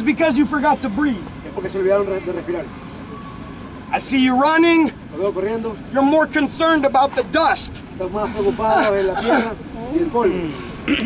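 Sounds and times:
outdoor background noise: 0.0s - 11.0s
man talking: 3.9s - 10.7s.

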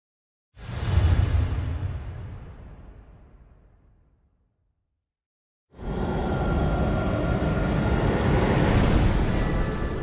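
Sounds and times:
loud steady rumbling: 5.8s - 9.7s.

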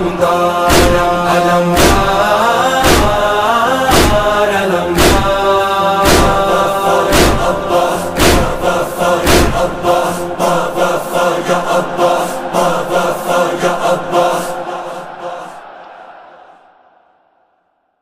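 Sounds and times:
group chanting in unison: 0.0s - 18.0s
loud percussive beats: 0.7s - 1.2s, 1.8s - 3.3s, 3.9s - 4.4s, 5.0s - 5.4s, 6.0s - 6.5s, 7.1s - 7.6s, 8.2s - 8.6s, 9.2s - 9.6s.

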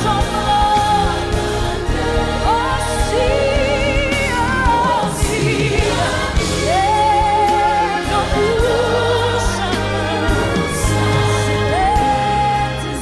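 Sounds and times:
sustained bass line: 0.0s - 13.0s.

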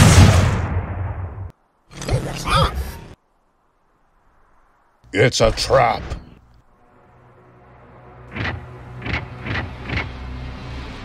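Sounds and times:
loud explosion blast: 0.0s - 1.5s.

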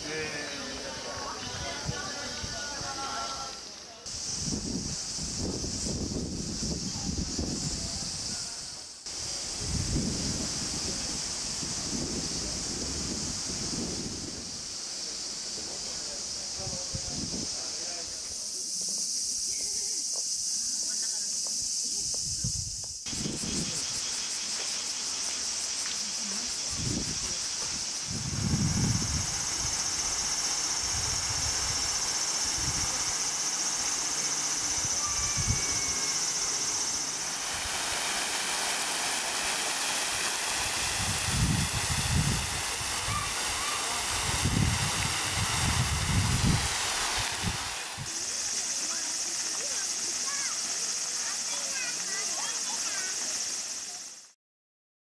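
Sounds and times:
fountains spraying and splashing: 0.0s - 22.3s, 22.9s - 54.3s
cicadas buzzing: 0.0s - 54.3s.

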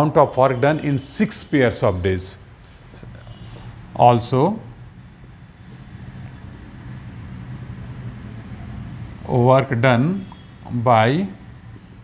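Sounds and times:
marker writing on whiteboard: 2.8s - 12.0s.

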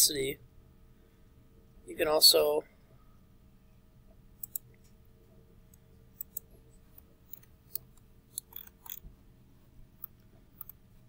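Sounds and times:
computer mouse clicks: 4.4s - 4.9s, 5.7s - 9.0s, 10.0s - 10.8s.

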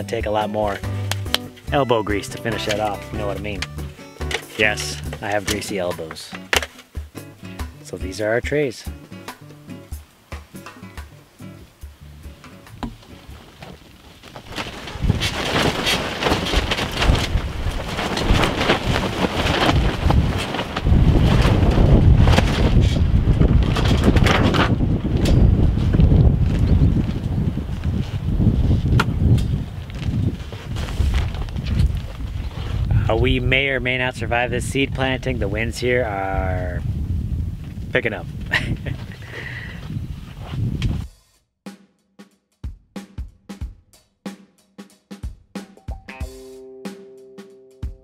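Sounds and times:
wind gusting against microphone: 14.4s - 41.1s.

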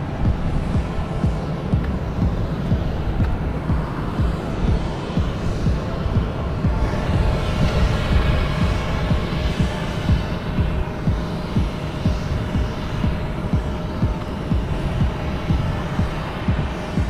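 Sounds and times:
faint constant whine: 0.0s - 17.0s
jet aircraft hum: 0.0s - 17.0s
wind buffeting microphone: 0.0s - 17.0s.

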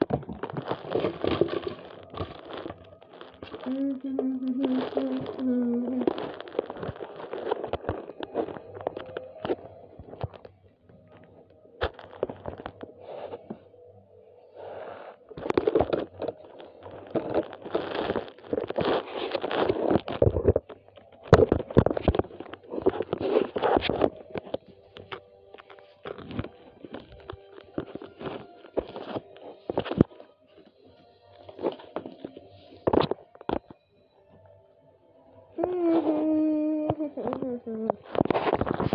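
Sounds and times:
plastic toy cars clattering: 0.0s - 3.8s.

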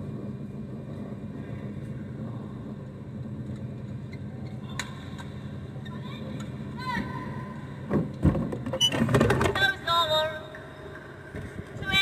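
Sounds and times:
indoor hall hum: 0.0s - 12.0s.

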